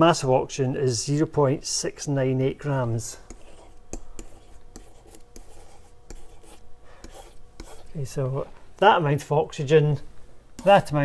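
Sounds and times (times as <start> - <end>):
pen tapping and scratching whiteboard: 3.3 - 7.9.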